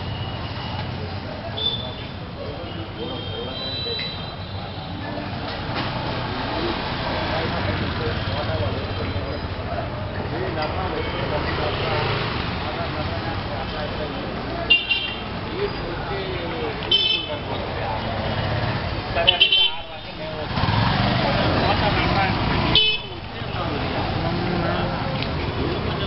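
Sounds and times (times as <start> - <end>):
motorcycles and rickshaws running: 0.0 - 26.0
passersby voices: 0.0 - 26.0
vehicle horn honks: 14.7 - 15.2, 22.8 - 23.1.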